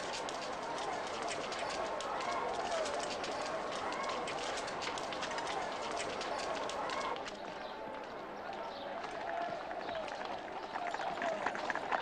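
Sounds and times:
faint voices: 0.0 - 12.0
group footsteps: 0.0 - 12.0.

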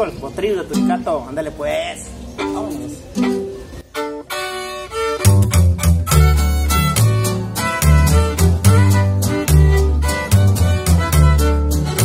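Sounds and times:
guitar playing: 0.6 - 1.3, 2.2 - 12.0
violin melody: 2.4 - 12.0
upright bass deep notes: 5.2 - 12.0.

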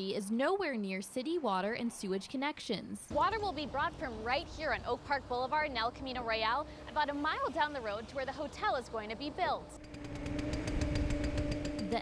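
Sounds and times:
heavy machinery engine running: 3.1 - 12.0.

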